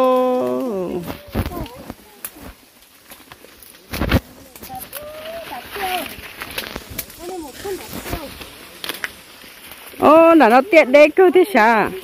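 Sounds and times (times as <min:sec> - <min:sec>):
rustling of maize leaves: 0:00.0 - 0:12.0.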